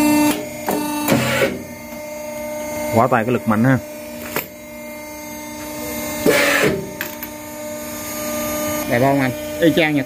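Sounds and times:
hose crimping machine humming: 0.0s - 10.0s.

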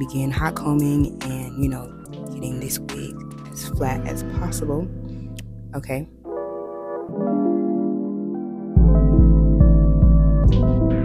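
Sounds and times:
electric piano chords: 1.1s - 11.0s.

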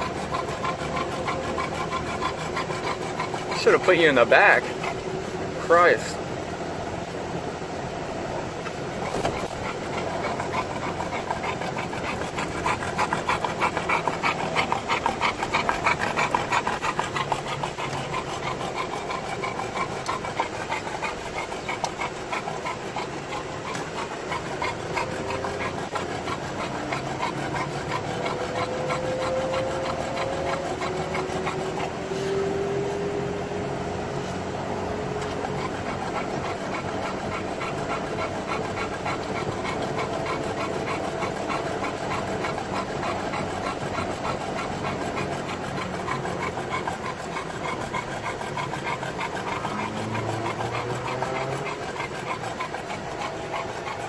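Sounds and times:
car engine and road noise: 0.0s - 39.1s, 49.4s - 51.8s
dog panting heavily: 0.0s - 54.0s.

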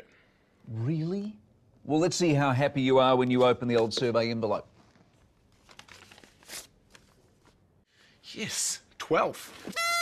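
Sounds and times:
paper envelope rustling: 4.8s - 7.6s.

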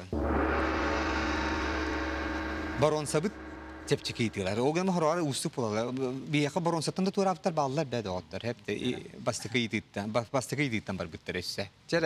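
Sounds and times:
deep low hum: 0.0s - 5.0s
gong-like sting ringing: 0.0s - 5.0s.

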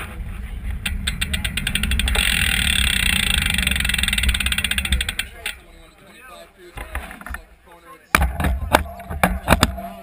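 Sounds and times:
tyre and wind noise: 0.0s - 5.9s, 8.2s - 10.0s
bike freewheel clicking: 0.8s - 5.6s.

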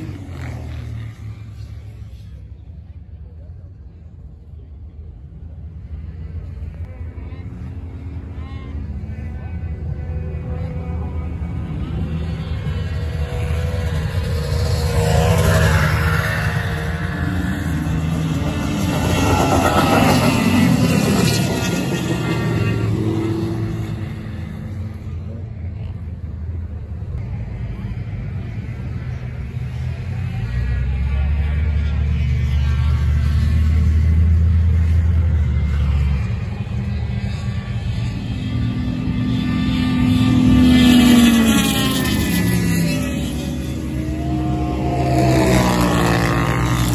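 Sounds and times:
snowmobiles passing by: 0.0s - 2.4s, 6.9s - 26.0s, 28.9s - 46.9s.

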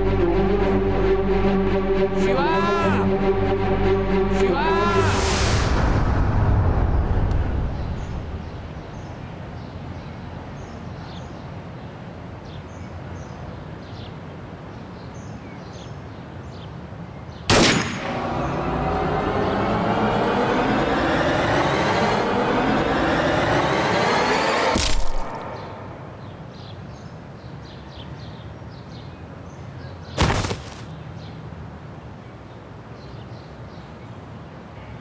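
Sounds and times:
dramatic swell of rising tones: 0.0s - 9.2s, 17.8s - 26.5s
birds chirping: 7.6s - 23.7s, 25.2s - 31.5s
pistol shot: 17.5s - 18.2s.

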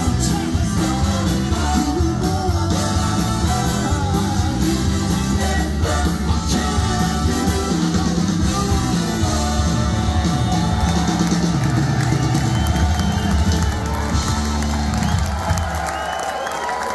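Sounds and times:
live rock band with horns: 0.0s - 16.9s
crowd cheering and whooping: 9.7s - 16.9s.

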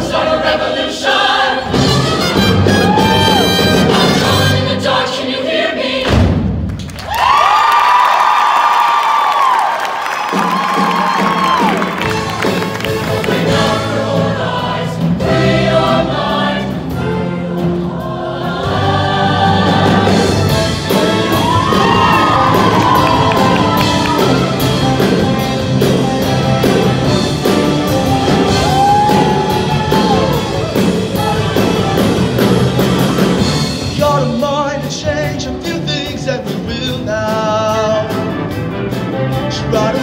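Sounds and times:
choir singing with accompaniment: 0.0s - 6.6s, 11.9s - 40.0s.

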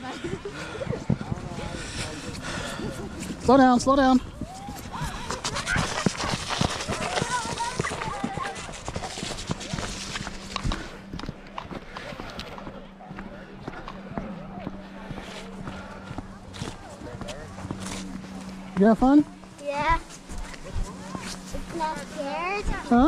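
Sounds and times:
background chatter of people: 0.0s - 23.0s
low steady hum: 0.0s - 23.0s.

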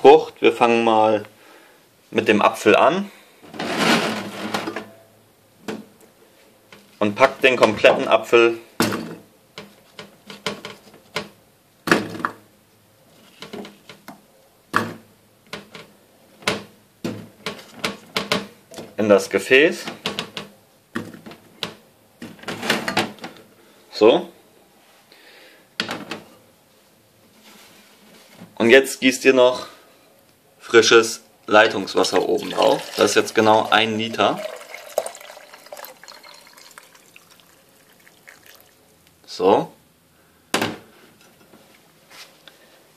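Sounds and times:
apple pieces clattering in glass jug: 32.1s - 38.6s.

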